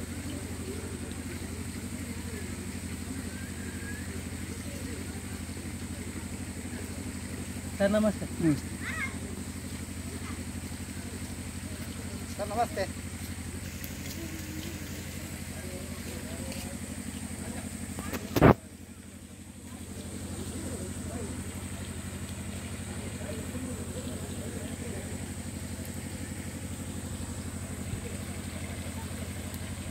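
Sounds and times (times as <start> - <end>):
small engine idling: 0.0 - 29.9.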